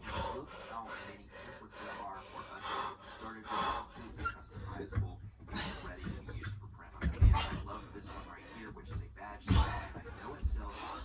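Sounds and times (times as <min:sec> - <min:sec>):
man breathing heavily: 0:00.0 - 0:06.4, 0:07.2 - 0:11.0.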